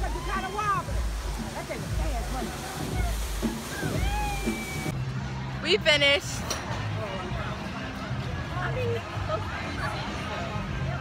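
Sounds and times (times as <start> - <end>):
running water from water slide: 0.0 - 5.0.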